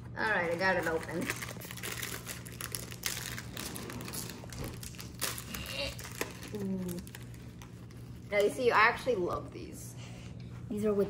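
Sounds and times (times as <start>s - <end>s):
plastic wrapper crinkling: 0.2s - 8.5s.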